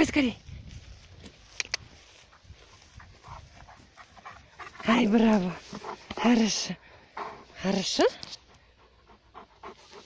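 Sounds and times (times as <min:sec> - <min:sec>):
sharp clicks: 0:01.6 - 0:01.9
dog panting: 0:02.2 - 0:10.0.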